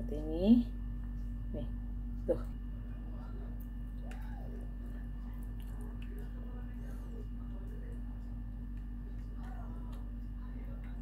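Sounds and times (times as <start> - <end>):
steady low hum: 0.0 - 11.0
faint wet squishing: 3.5 - 11.0.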